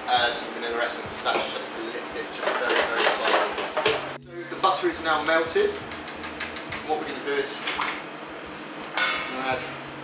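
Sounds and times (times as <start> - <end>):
utensil clinking against container: 2.4 - 4.0.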